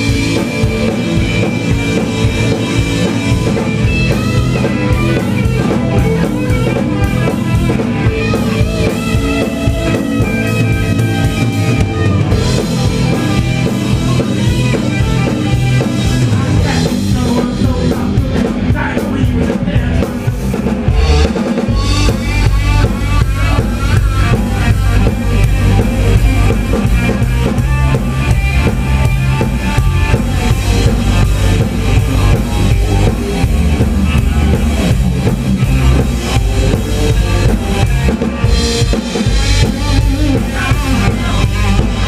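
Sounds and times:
blues-rock band playing: 0:00.0 - 0:42.0
drum kit: 0:00.0 - 0:42.0.

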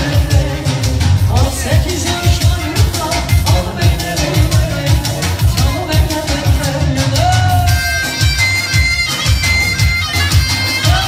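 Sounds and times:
low drum beat: 0:00.0 - 0:11.0.

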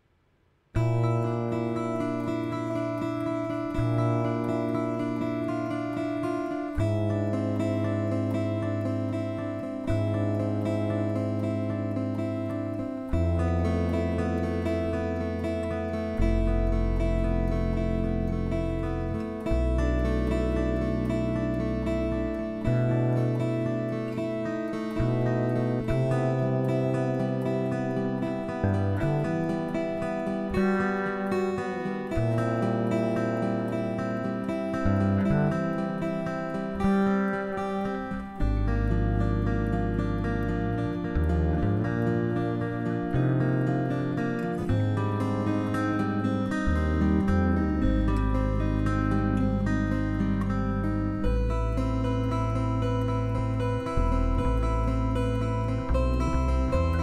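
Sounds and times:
plucked acoustic guitar notes: 0:00.7 - 0:57.0
held low guitar notes: 0:00.8 - 0:57.0.

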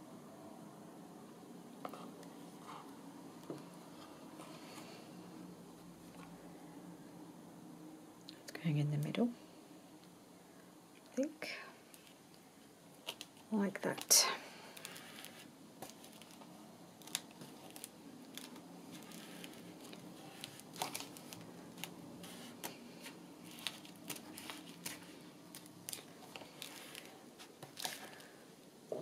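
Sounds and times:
paper rustling: 0:14.7 - 0:28.4.

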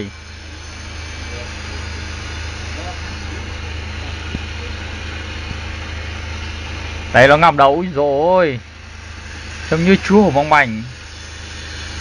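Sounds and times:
low mechanical drone: 0:00.0 - 0:12.0
steady hiss: 0:00.0 - 0:12.0.

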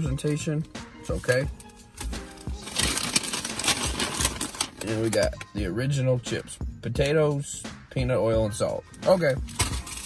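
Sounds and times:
music: 0:00.0 - 0:10.0
chip bag rustling: 0:02.4 - 0:05.2.

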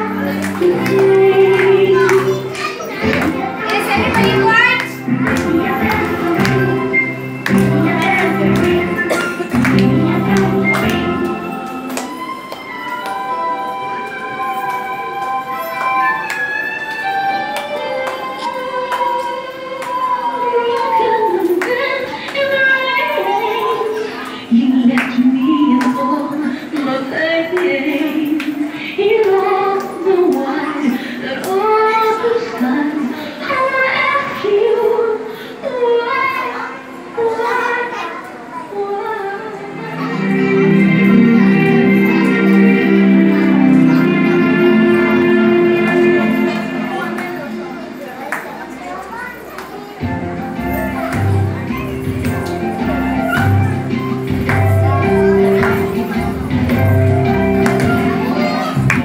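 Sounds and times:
children's voices: 0:00.0 - 0:12.1, 0:15.1 - 0:59.0
music with singing: 0:00.0 - 0:49.0, 0:49.8 - 0:59.0
children singing: 0:05.0 - 0:11.8, 0:39.2 - 0:47.8.

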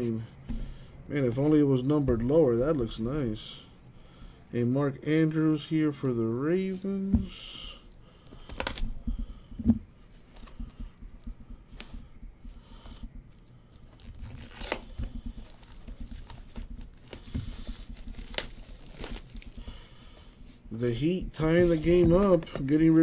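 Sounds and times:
foil wrapper crinkling and tearing: 0:08.3 - 0:09.0, 0:13.8 - 0:19.8.

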